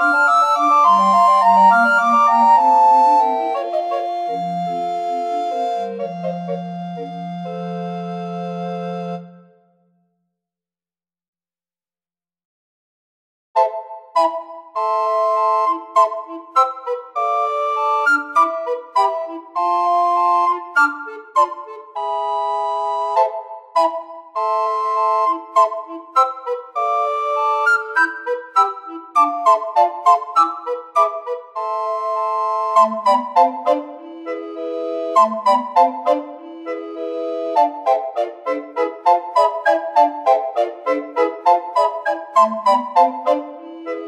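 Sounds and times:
recorder quartet playing: 0:00.0 - 0:09.5, 0:13.6 - 0:44.0.

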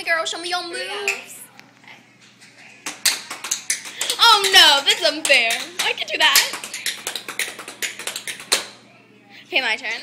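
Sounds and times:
dance shoes tapping on hard floor: 0:02.8 - 0:08.8.

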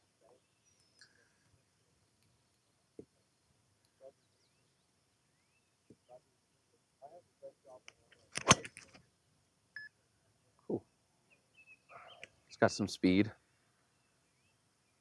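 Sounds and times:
golf club striking ball: 0:08.4 - 0:08.8.

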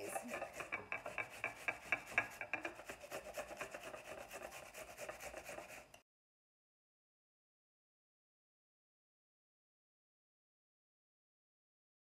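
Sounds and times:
onion grated on metal grater: 0:00.0 - 0:06.0.

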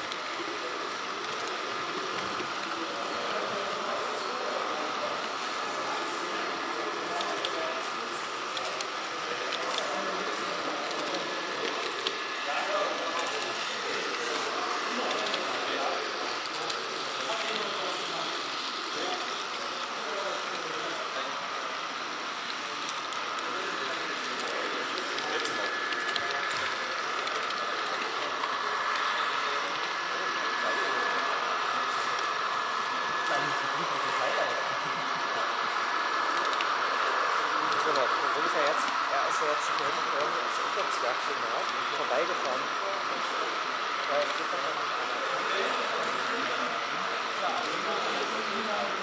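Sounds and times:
indistinct chatter in hall: 0:00.0 - 0:49.0
model train motor whine: 0:00.0 - 0:49.0.

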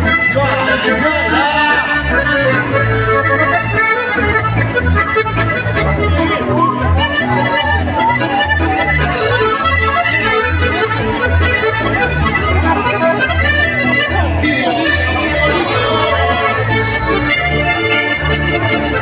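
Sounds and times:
button accordions melody: 0:00.0 - 0:19.0
guitar: 0:00.0 - 0:19.0
pulsing bass: 0:00.0 - 0:19.0.

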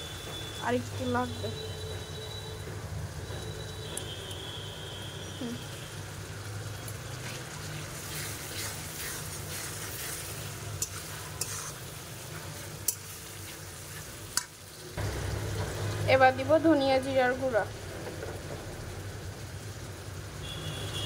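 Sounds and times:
masala sizzling in oil: 0:00.0 - 0:21.0.

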